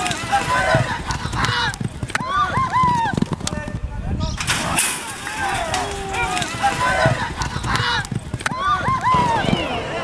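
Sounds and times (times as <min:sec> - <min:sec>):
people shouting: 0:00.0 - 0:03.2, 0:04.6 - 0:10.0
horse hoofbeats on dirt: 0:00.1 - 0:03.8, 0:05.8 - 0:09.8.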